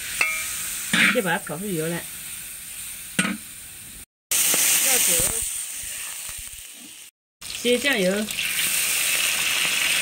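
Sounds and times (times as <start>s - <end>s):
meat sizzling in a wok: 0.0s - 10.0s.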